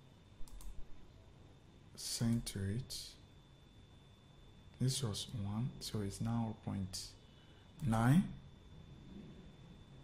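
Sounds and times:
computer mouse clicks: 0.4 - 0.8.

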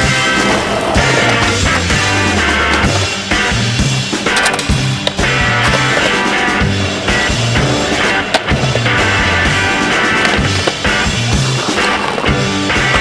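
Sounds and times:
music soundtrack: 0.0 - 13.0
skateboard clack: 0.0 - 13.0
skateboard rolling on concrete: 0.0 - 13.0.

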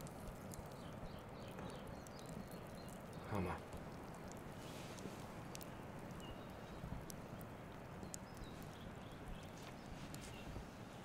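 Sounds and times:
campfire crackling and popping: 0.0 - 11.0
faint bird chirps: 0.0 - 11.0
low background rumble: 0.0 - 11.0.

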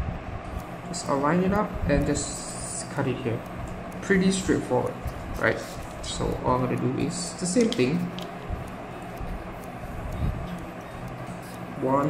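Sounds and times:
steady background noise: 0.0 - 12.0
man's voice: 4.0 - 8.1.

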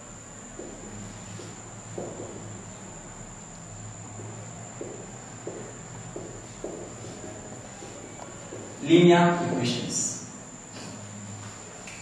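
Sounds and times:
steady high-pitched whine: 0.0 - 12.0
marker pen writing on whiteboard: 0.4 - 9.5.

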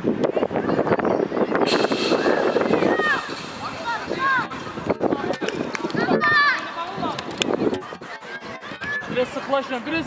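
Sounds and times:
voices shouting outdoors: 0.4 - 10.0.

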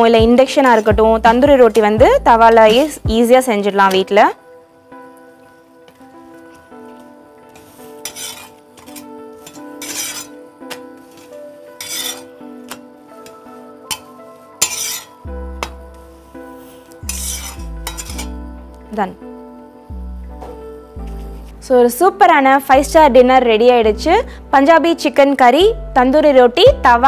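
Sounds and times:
background music: 0.0 - 27.0
metal spatula scraping griddle: 7.5 - 15.2, 16.5 - 18.4.

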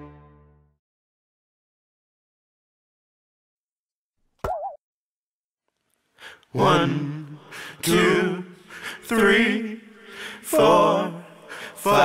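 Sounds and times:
cartoon pop and boing: 4.4 - 4.8.

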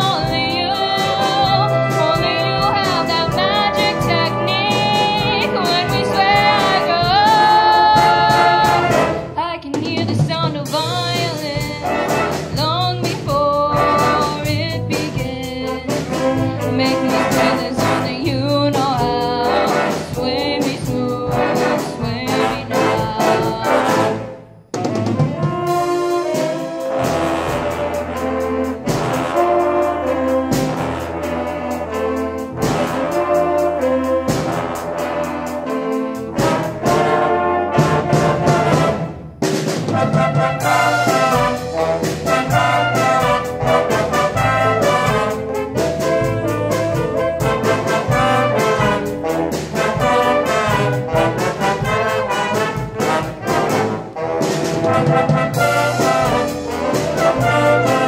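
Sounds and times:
jazz band playing cha-cha: 0.0 - 58.0
trombones and trumpets: 0.0 - 58.0.

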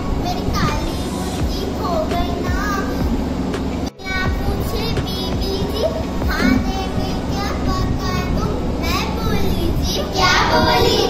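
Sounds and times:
girl speaking: 0.0 - 3.2, 3.9 - 11.0.

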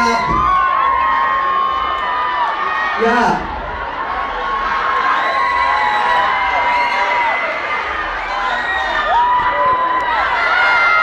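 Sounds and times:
audience cheering and screaming: 0.0 - 11.0.

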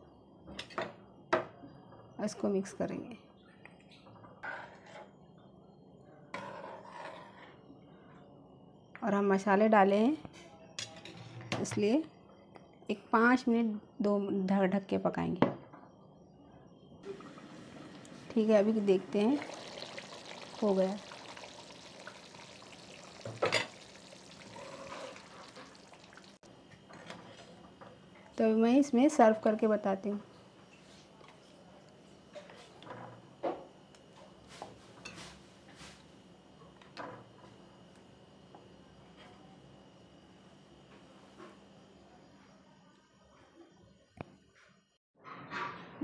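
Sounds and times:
ladle stirring: 17.0 - 26.4
gravy bubbling in a pot: 17.0 - 26.5
ladle clatter: 19.0 - 26.4.

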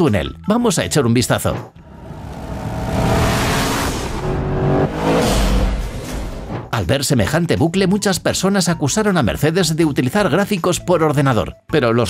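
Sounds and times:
car engine running at full speed: 1.8 - 6.5
deep rumble: 1.8 - 6.8.

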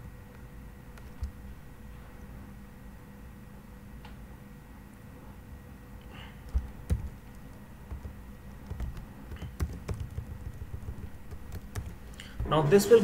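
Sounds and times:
computer keyboard typing: 6.4 - 12.5.

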